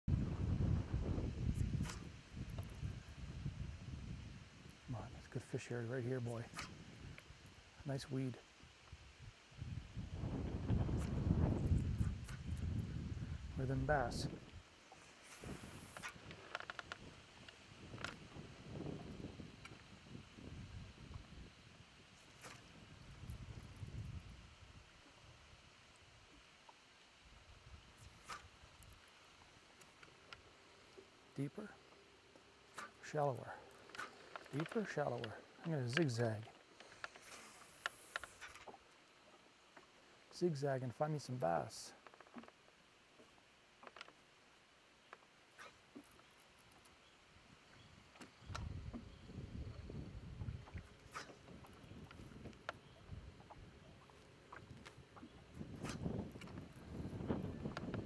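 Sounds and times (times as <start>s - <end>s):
wind buffeting microphone: 0.1s - 5.2s, 9.0s - 14.6s, 15.4s - 21.6s, 47.8s - 58.0s
fishing rod swishing through air: 1.6s - 2.1s, 6.5s - 6.8s, 28.0s - 28.5s, 51.1s - 51.5s.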